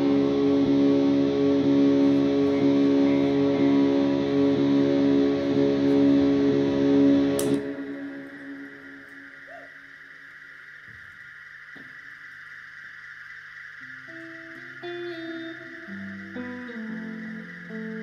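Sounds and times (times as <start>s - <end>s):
soft plucked guitar notes: 0.0s - 8.3s
loud electric guitar chord: 0.0s - 9.4s, 14.1s - 18.0s
steady high drone: 0.0s - 18.0s.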